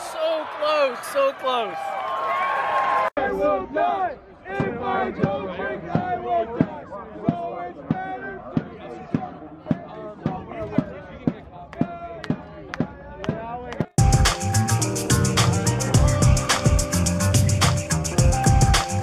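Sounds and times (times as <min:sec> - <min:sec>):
supporters chanting: 0:03.2 - 0:13.4
drum beats: 0:04.6 - 0:19.0.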